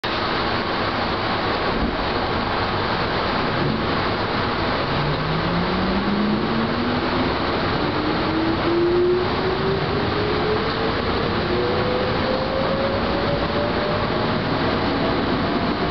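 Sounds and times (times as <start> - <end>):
train running gear rumble and rattle: 0.0 - 5.1, 9.3 - 15.9.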